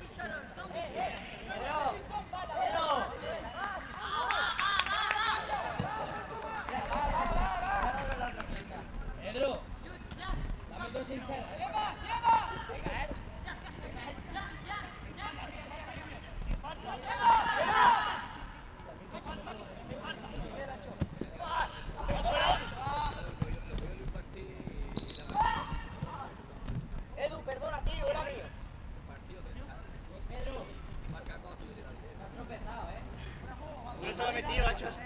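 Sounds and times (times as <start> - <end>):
voices shouting and calling: 11.6 - 18.8, 25.0 - 26.2.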